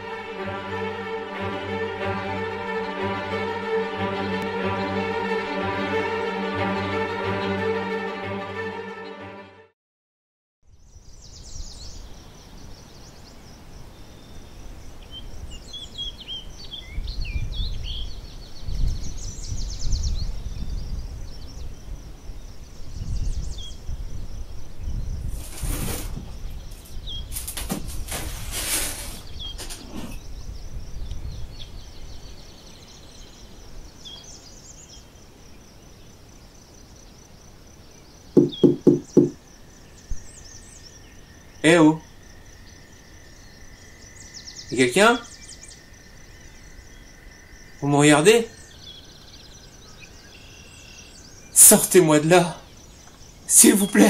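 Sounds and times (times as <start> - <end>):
birds chirping: 10.7 - 28.0, 28.8 - 54.0
high insect buzz: 20.3 - 31.9, 33.2 - 52.0
quick knocks: 38.4 - 39.4.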